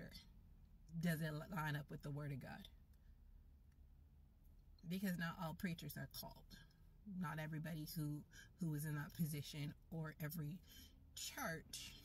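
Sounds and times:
woman's voice: 0.0 - 0.3, 0.9 - 2.8, 4.8 - 12.0
faint low cabin hum: 0.0 - 12.0.

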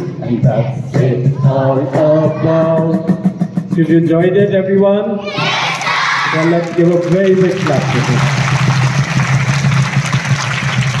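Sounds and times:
crowd clapping: 5.8 - 11.0.

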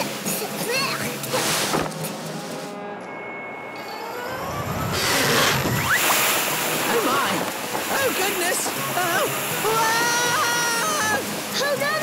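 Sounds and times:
background music: 0.0 - 12.0
cartoon water gushing and spraying: 4.8 - 11.7.

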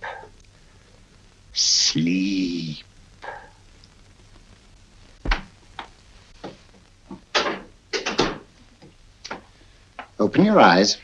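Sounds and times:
low room hum: 0.0 - 11.0
rustles and knocks of movement: 5.1 - 10.2.

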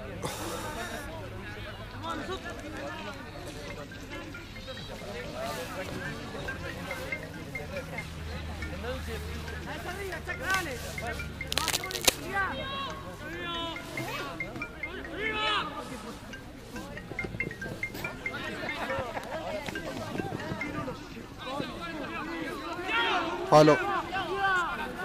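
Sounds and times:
players shouting: 22.3 - 25.0.

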